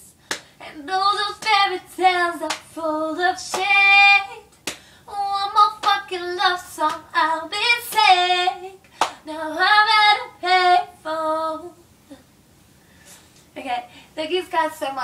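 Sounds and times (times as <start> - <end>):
sharp slaps: 0.3 - 0.5, 2.4 - 2.7, 4.5 - 4.9, 5.8 - 6.0, 8.8 - 9.2
woman singing unaccompanied: 0.6 - 4.5, 5.1 - 11.8, 13.6 - 15.0.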